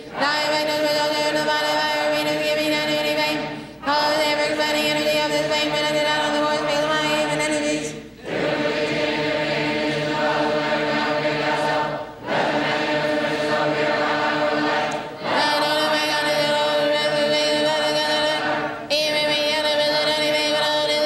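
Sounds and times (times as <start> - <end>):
voices chanting in unison: 0.0 - 20.6.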